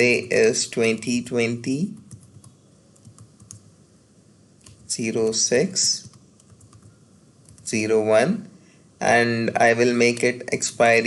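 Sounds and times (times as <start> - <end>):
faint computer keystrokes: 1.9 - 3.7, 4.6 - 4.9, 6.0 - 7.7.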